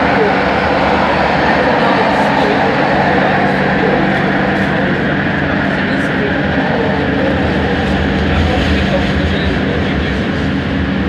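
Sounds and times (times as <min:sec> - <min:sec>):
constant low hum: 0:00.0 - 0:11.0
metro car running noise: 0:00.0 - 0:11.0.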